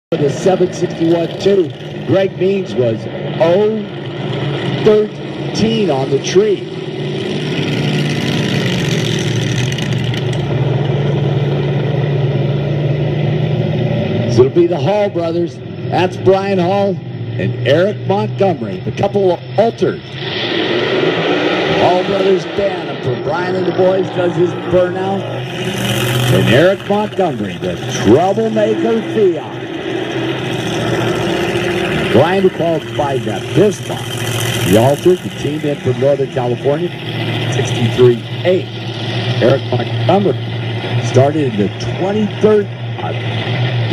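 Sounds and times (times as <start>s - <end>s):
vehicle engine idling: 0.1s - 20.2s, 20.9s - 43.9s.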